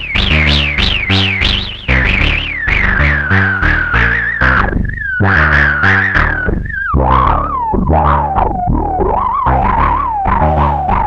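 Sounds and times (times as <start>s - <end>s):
synthesizer sequenced bass line: 0.0s - 11.0s.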